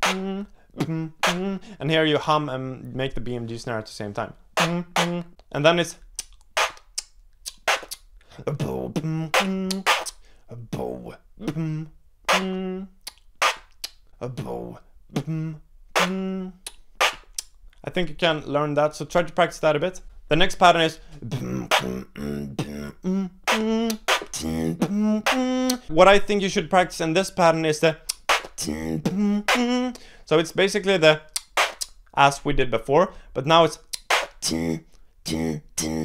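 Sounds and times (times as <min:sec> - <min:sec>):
human beatboxing: 0:00.0 - 0:01.8, 0:04.6 - 0:17.6, 0:21.0 - 0:26.0, 0:27.8 - 0:32.2, 0:33.5 - 0:36.0.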